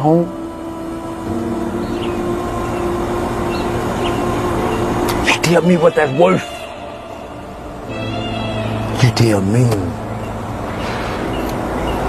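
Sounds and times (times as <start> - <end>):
low hum of held tones: 0.0 - 12.0.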